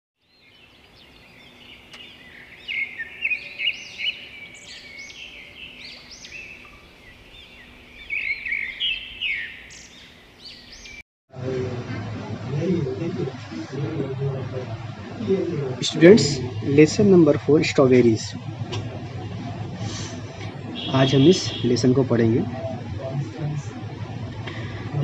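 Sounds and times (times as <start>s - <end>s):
birds chirping and twittering: 0.2s - 11.0s, 14.4s - 25.0s.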